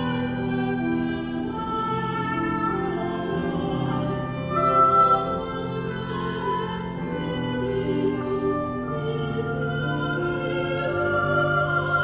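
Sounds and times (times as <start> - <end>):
small orchestra playing a hymn: 0.0 - 12.0
woodwind melody: 0.0 - 12.0.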